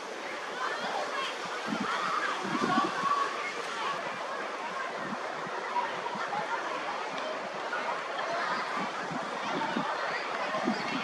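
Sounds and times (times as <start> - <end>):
distant indistinct voices: 0.0 - 11.0
steady rushing noise: 0.0 - 11.0.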